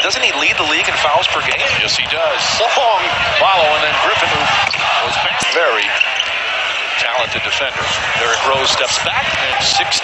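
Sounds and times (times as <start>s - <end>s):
crowd noise and voices: 0.0s - 10.0s.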